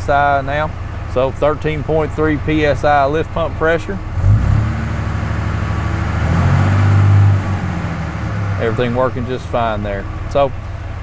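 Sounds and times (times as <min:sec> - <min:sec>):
diesel truck engine revving: 0:00.0 - 0:11.0.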